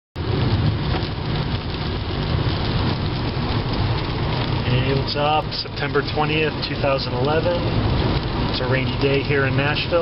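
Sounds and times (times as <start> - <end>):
low car rumble: 0.2 - 10.0
rain and tyre spray hiss: 0.2 - 10.0.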